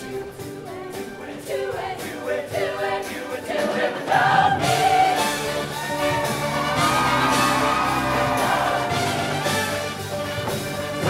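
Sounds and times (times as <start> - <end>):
choir singing: 0.0 - 9.8
live band playing: 4.6 - 11.0.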